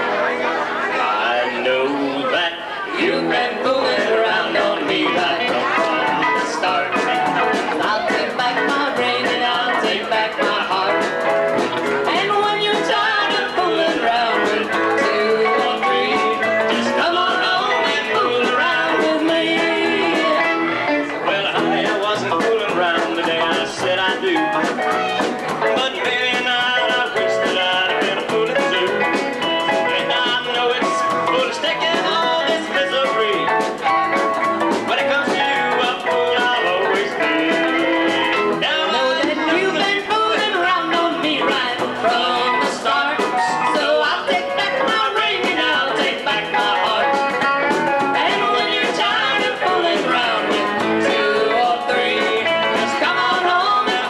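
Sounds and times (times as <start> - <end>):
sung vocals: 0.0 - 34.0, 34.7 - 54.0
electric guitar: 0.0 - 54.0
drums with cymbals: 3.8 - 20.6, 21.3 - 54.0.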